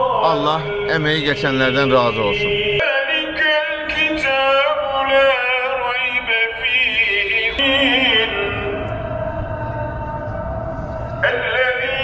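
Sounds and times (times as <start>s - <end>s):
man chanting religious recitation: 0.0s - 8.8s, 11.2s - 12.0s
low rumble: 7.5s - 12.0s.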